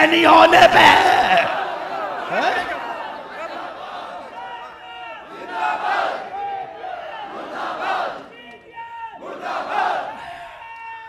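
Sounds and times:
crowd of men chanting slogan: 0:00.6 - 0:10.2.

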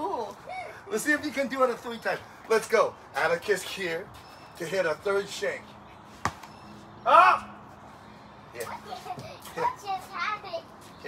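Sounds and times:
child's voice: 0:08.6 - 0:11.0.

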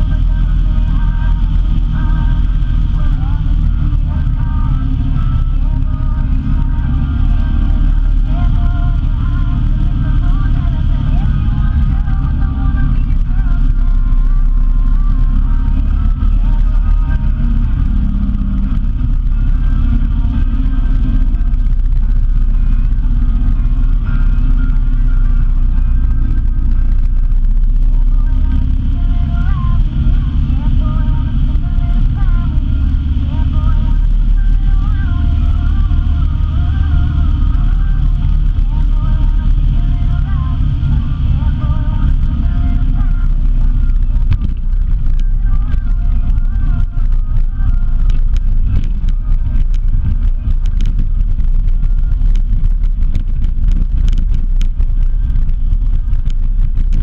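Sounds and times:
vehicle engine and road rumble: 0:00.0 - 0:57.0
wind on microphone: 0:00.0 - 0:57.0.

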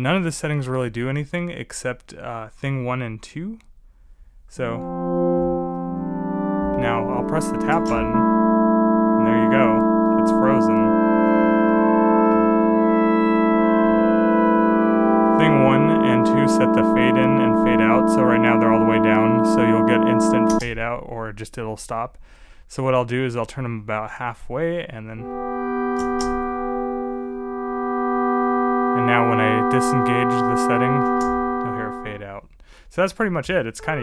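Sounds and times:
synth pad drone: 0:04.8 - 0:20.6, 0:25.2 - 0:32.2.

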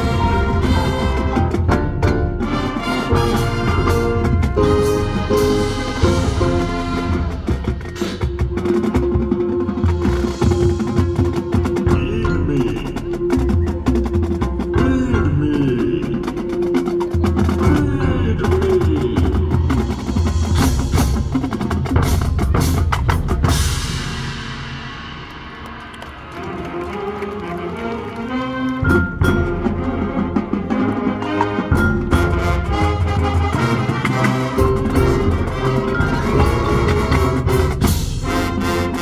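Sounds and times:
drumline percussion: 0:00.0 - 0:39.0
marching band playing: 0:00.0 - 0:39.0.

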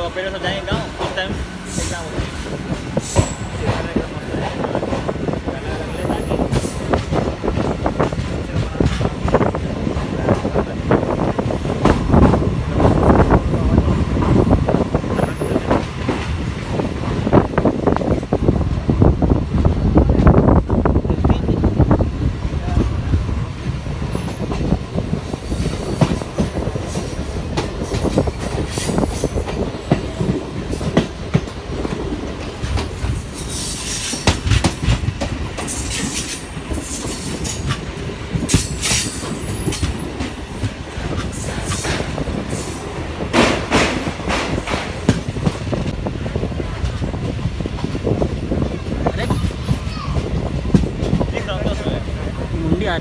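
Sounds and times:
train wheels rumbling on rails: 0:00.0 - 0:53.0.

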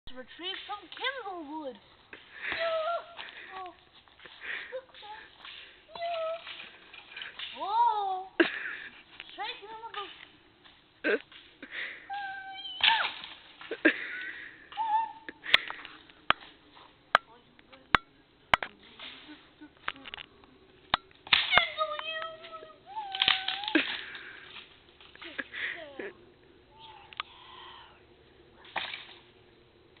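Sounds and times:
person's high-pitched cry: 0:02.4 - 0:03.8, 0:12.0 - 0:13.1, 0:14.7 - 0:15.4, 0:21.7 - 0:23.9
dry branch snapping: 0:20.9 - 0:22.4, 0:23.0 - 0:25.3.

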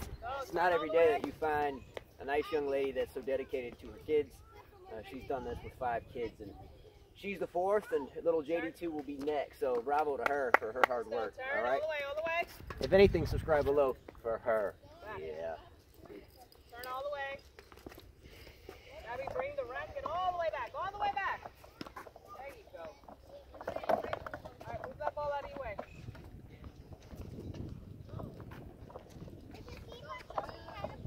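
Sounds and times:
wind rumble on microphone: 0:12.5 - 0:13.8, 0:24.6 - 0:31.0.

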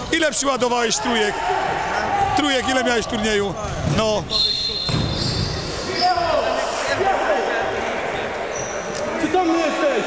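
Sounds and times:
people talking: 0:02.0 - 0:10.0
sneakers squeaking on floor: 0:03.7 - 0:06.4, 0:08.5 - 0:09.1
ball bouncing: 0:04.9 - 0:05.5.

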